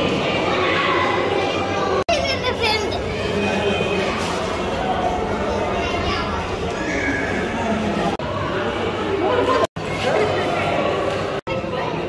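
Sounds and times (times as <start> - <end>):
people talking indistinctly: 0.2 - 12.0.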